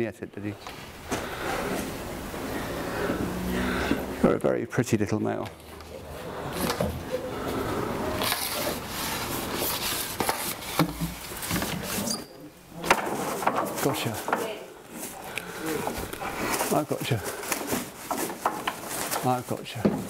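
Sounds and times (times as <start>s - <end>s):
net rustling and rubbing: 8.1s - 12.2s, 13.2s - 19.6s.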